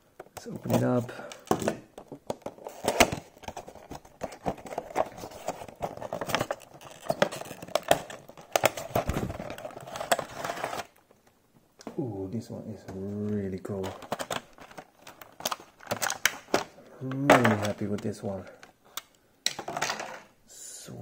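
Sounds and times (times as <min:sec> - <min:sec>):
plastic crinkling: 0:00.4 - 0:11.2, 0:13.7 - 0:18.2.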